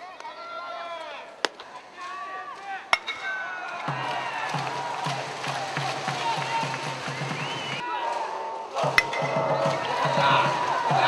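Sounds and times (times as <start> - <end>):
distant shouts: 0.0 - 11.0
ball popping into mitt: 1.4 - 1.7
metal bat hitting ball: 1.4 - 1.8, 2.9 - 4.0, 8.9 - 9.7.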